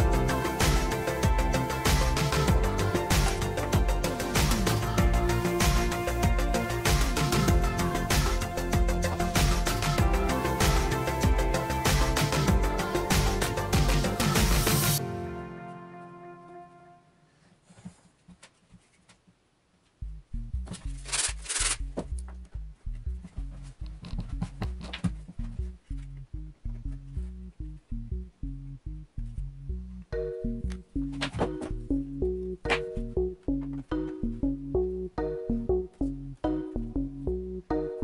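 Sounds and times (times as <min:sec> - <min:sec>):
background music with bass beat: 0:00.0 - 0:15.1, 0:21.8 - 0:38.0.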